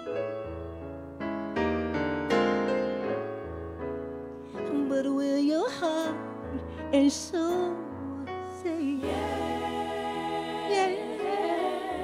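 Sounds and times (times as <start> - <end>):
gospel singing voices: 8.6 - 12.0.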